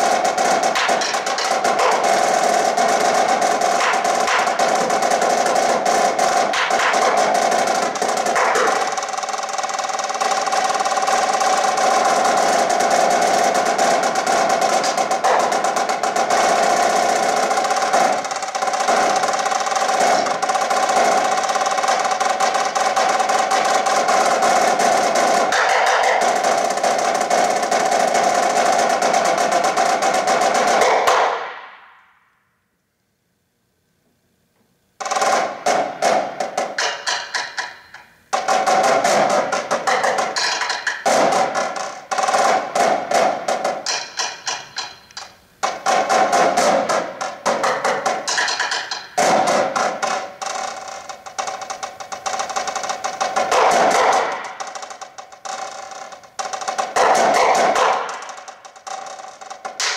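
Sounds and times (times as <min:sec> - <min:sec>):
snare drum rolls: 0:00.0 - 0:32.2, 0:35.0 - 0:59.9.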